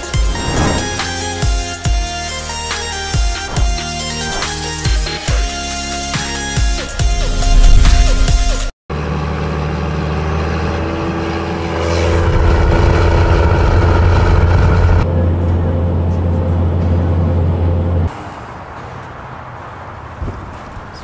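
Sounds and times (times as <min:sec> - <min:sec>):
vehicle engine and road drone: 0:00.0 - 0:21.0.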